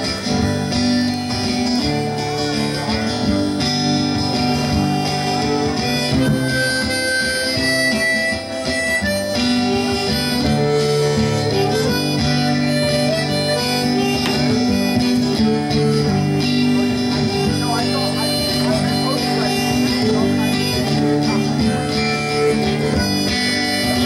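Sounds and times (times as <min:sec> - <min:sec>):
acoustic guitar: 0:00.0 - 0:24.0
harmonica long notes: 0:00.0 - 0:24.0.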